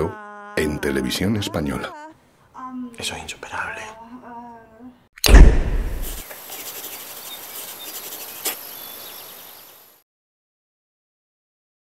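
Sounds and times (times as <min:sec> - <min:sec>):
loud hit: 0:05.2 - 0:06.2
sharp click: 0:05.2 - 0:06.2.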